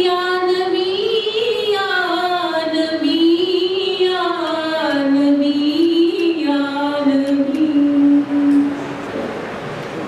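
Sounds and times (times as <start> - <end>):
woman singing unaccompanied: 0.0 - 8.8.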